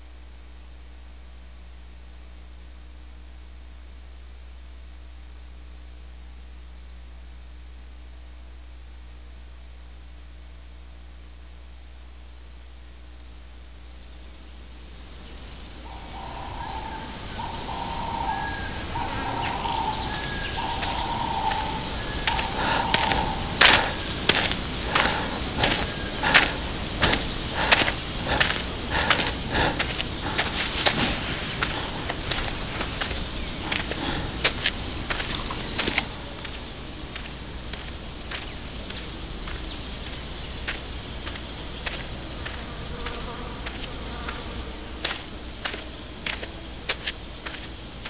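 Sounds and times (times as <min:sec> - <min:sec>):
insects buzzing and chirring: 0:00.0 - 0:48.0
steady hiss: 0:15.1 - 0:45.6
footsteps on dirt road: 0:15.9 - 0:48.0.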